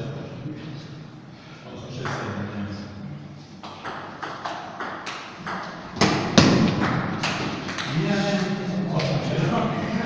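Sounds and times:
table tennis ball thuds: 3.6 - 8.0.

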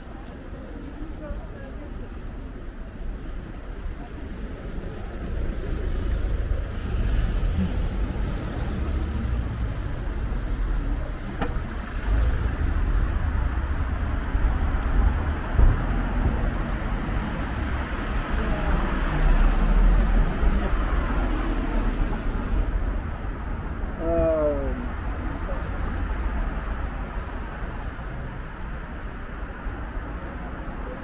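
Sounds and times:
cars passing close by: 4.4 - 23.8.

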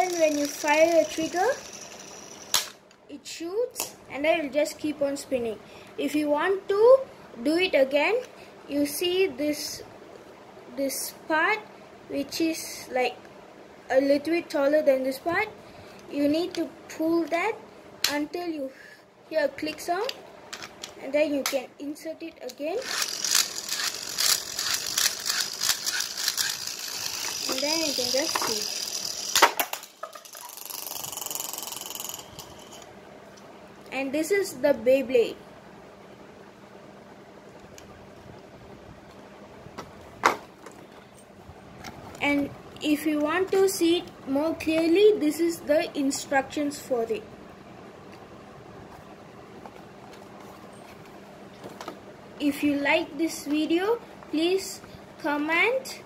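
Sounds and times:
high whine of spinning top: 0.0 - 2.8, 22.8 - 33.0
plastic launcher ratchet clicks: 0.0 - 2.8, 22.8 - 32.8
faint hum: 0.0 - 56.0
low background hiss: 0.0 - 56.0.

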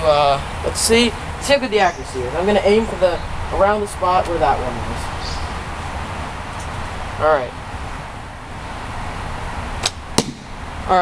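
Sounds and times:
bowstring snap: 9.8 - 10.4
arrow striking target: 9.8 - 10.6.

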